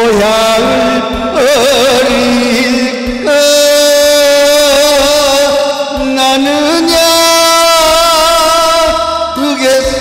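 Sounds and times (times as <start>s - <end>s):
backing track music: 0.0s - 10.0s
man singing long note: 0.0s - 10.0s.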